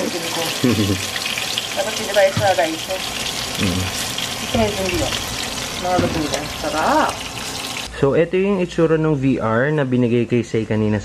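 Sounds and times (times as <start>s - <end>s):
food frying in oil: 0.0s - 7.9s
person speaking: 3.6s - 3.9s.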